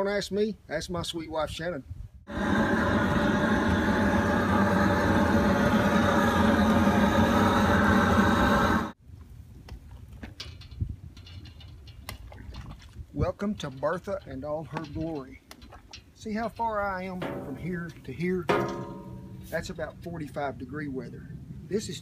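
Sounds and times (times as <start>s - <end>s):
propane torch roaring: 2.3s - 9.0s.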